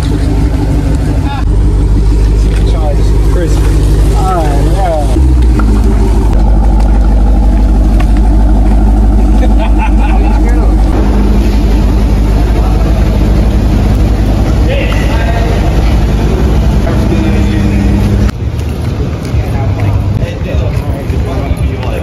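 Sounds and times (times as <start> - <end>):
car engine idling: 0.0 - 22.0
voices: 0.0 - 22.0.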